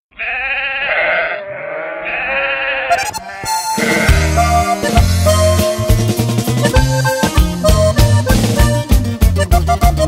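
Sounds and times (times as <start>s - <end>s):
livestock bleating: 0.1s - 4.9s
band with bass and accordion: 2.9s - 10.0s.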